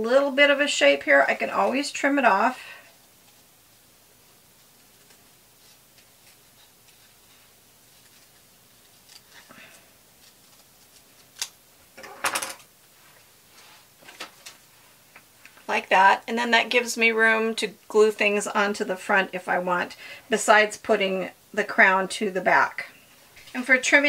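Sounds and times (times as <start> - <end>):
scissors snipping paper: 8.1 - 9.4.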